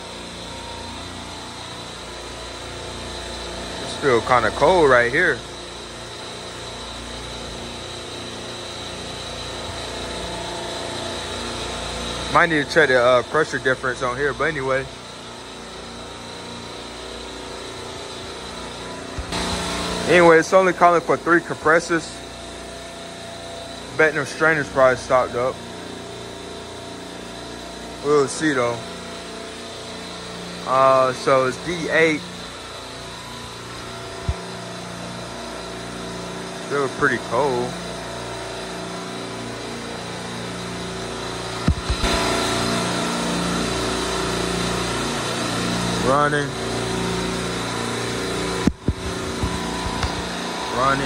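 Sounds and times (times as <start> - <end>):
compressor rack humming: 0.0 - 51.0
short low thumps: 48.7 - 50.3.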